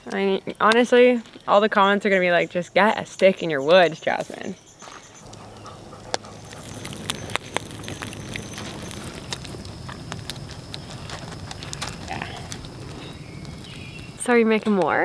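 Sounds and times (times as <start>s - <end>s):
campfire crackling and popping: 0.0s - 15.0s.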